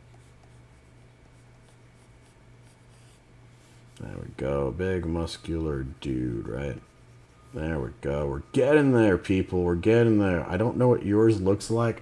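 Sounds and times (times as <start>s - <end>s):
stylus scratching on tablet: 0.0s - 8.2s
steady low hum: 0.0s - 12.0s.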